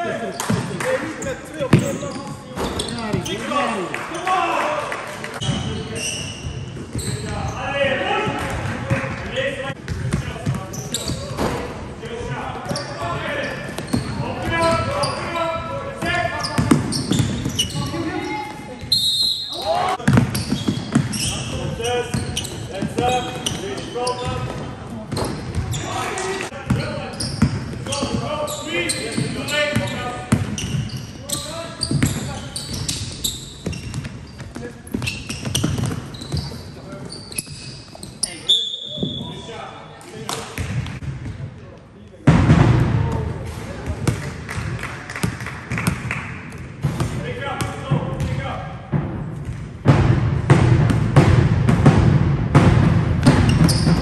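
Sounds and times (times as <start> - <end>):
players' voices: 0.0 - 49.2
referee whistle blasts: 18.9 - 19.7
basketball bouncing: 20.0 - 23.6, 46.8 - 54.0.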